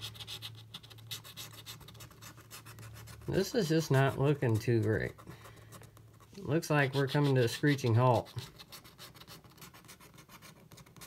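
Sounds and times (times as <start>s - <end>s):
scratching lottery ticket: 0.0s - 11.0s.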